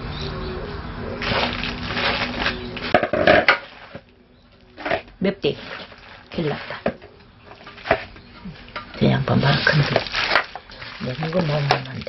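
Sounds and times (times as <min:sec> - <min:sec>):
gloved hands mixing greens: 0:01.1 - 0:12.0.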